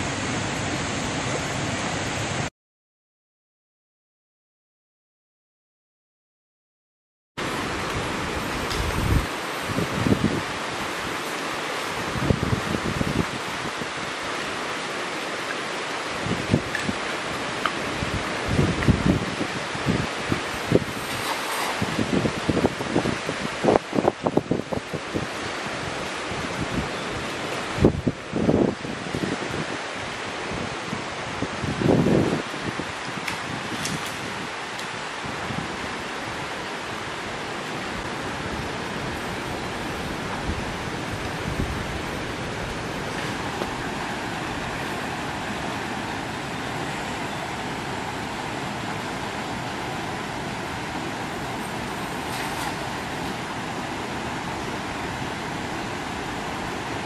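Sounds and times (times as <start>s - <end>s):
river flowing over stones: 0.0s - 2.5s, 7.4s - 57.0s.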